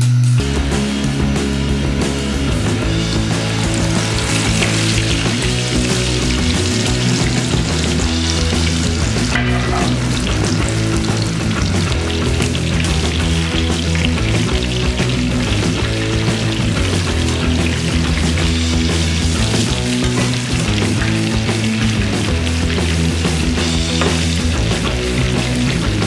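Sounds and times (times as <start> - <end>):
loud background music: 0.0 - 26.0
fish sizzling in hot oil: 2.6 - 26.0.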